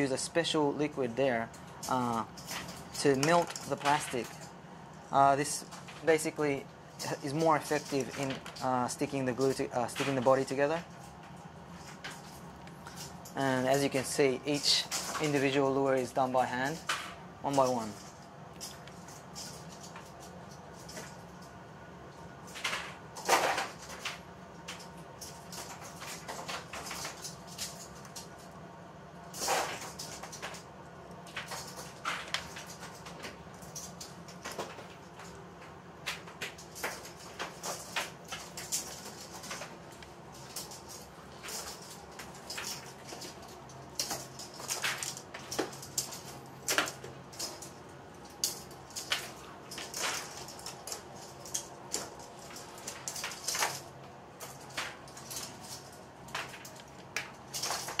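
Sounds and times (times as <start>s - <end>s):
faint steady hum: 0.0s - 58.0s
lure parts rustling clatter: 29.3s - 58.0s.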